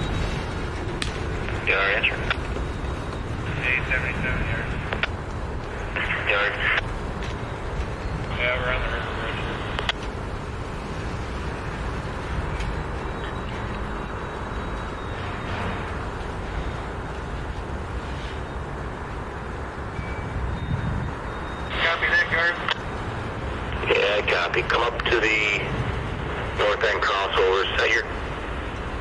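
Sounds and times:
freight train wheels rumbling: 0.0 - 29.0.

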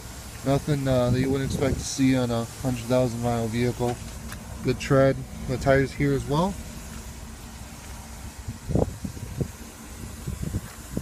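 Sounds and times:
wind rumble on microphone: 1.0 - 2.0, 8.1 - 11.0.

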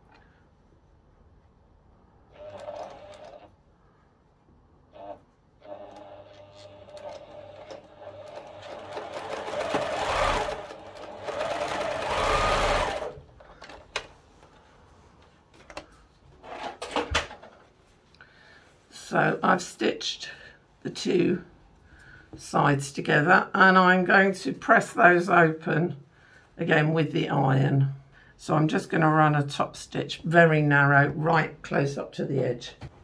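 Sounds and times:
sewing machine stitching: 2.3 - 3.5, 4.9 - 13.2
clicks and handling noises: 13.3 - 18.2.

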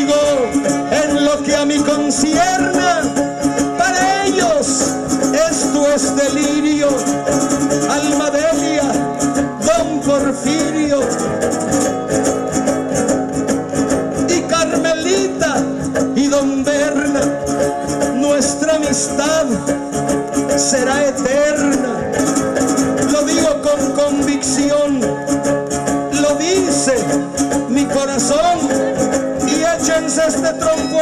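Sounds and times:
strummed guitars: 0.0 - 31.0.

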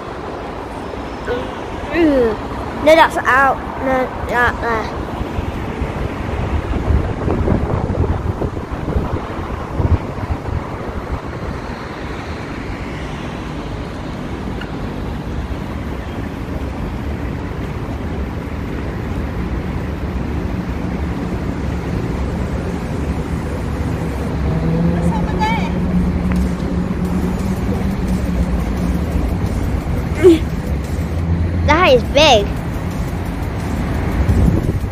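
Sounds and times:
street traffic: 0.0 - 34.9
vehicle engine hum: 0.0 - 34.9.

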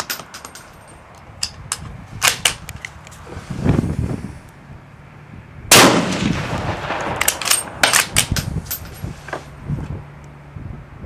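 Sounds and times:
rifle shot with long echo: 5.7 - 8.1
rifle bolt metallic clicks: 6.6 - 8.8.

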